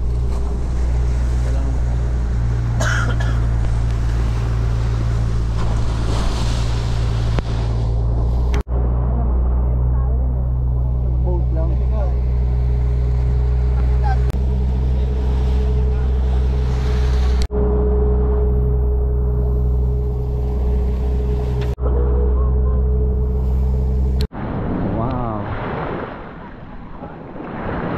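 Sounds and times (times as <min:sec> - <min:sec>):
boat engine droning: 0:00.0 - 0:24.6
people's voices: 0:13.6 - 0:17.5.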